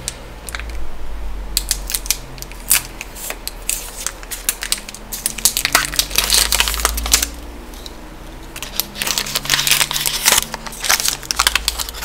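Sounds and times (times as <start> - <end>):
foil wrapper crinkling: 1.6 - 7.4, 8.5 - 12.0.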